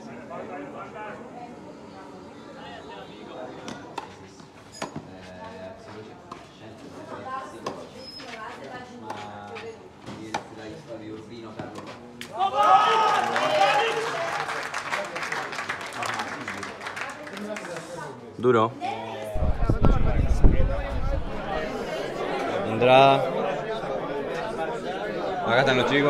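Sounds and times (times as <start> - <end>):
spectators chatting: 0.0 - 4.6, 13.6 - 26.0
crowd cheering and shouting: 12.4 - 14.1.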